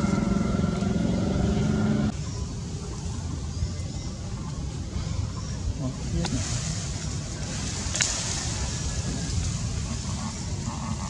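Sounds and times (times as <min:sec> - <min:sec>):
fluctuating low rumble: 0:00.0 - 0:03.4.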